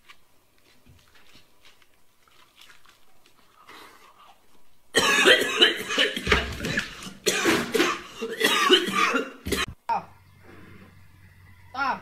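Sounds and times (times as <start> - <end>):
man coughing and spluttering: 4.9 - 9.7.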